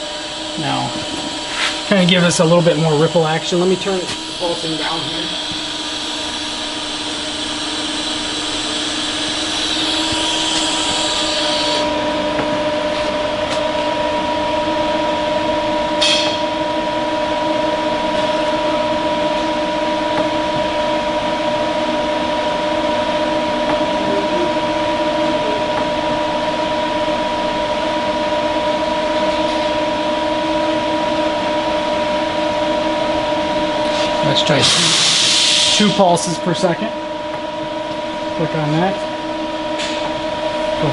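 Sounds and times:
steady tones: 0.0 - 34.9
machine hum: 0.0 - 40.9.

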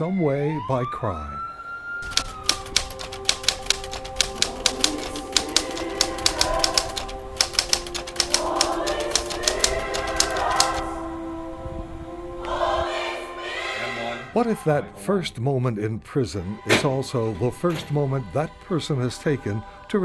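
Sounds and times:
typewriter keys clacking: 2.0 - 10.8
music with held chords and choir: 2.8 - 15.0, 16.4 - 20.0.

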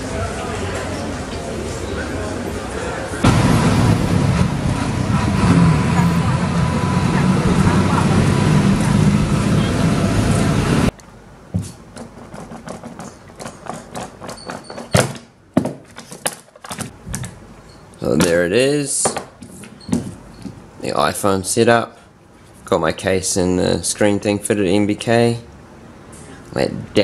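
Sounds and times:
din of voices in a mall: 0.0 - 11.4.

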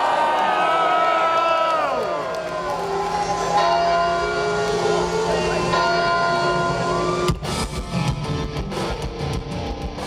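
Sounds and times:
distorted electric guitar: 3.0 - 10.0
heavy metal band playing live: 3.1 - 10.0.

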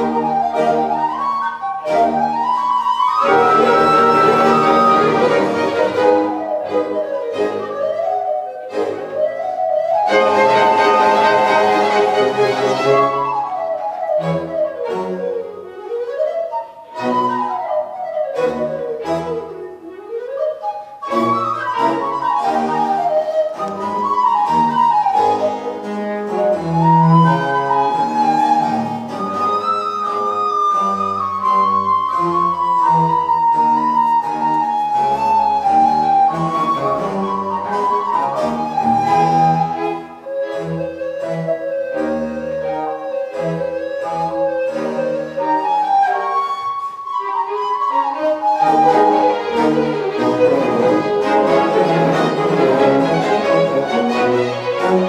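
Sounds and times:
recorder playing running melody: 0.0 - 25.9, 26.7 - 54.9
string orchestra: 0.0 - 55.0.

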